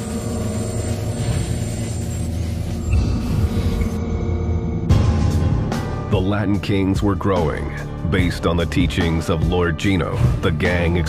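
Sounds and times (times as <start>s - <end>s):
sustained held tones: 0.0s - 4.9s
low rumbling drone: 0.0s - 6.2s.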